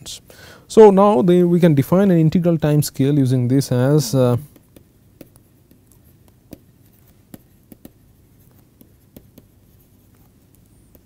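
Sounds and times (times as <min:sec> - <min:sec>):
stylus scratching on tablet: 0:03.7 - 0:11.0
pen tip tapping: 0:04.5 - 0:06.7, 0:07.3 - 0:08.0, 0:08.8 - 0:09.6.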